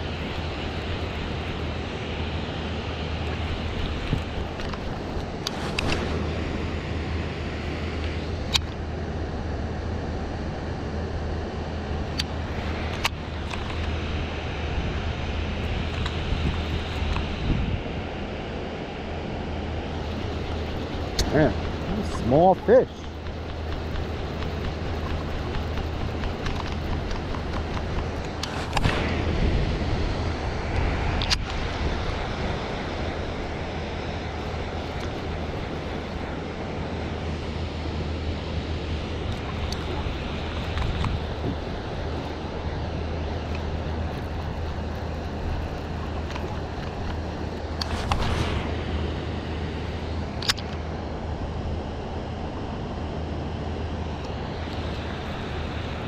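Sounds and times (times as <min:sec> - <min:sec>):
steady low rumble: 0:00.0 - 0:56.0
reel sharp tick: 0:20.0 - 0:29.1.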